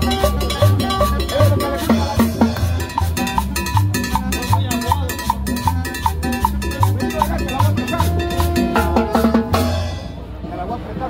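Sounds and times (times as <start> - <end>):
latin dance music: 0.0 - 10.3
crowd chatter: 0.0 - 11.0.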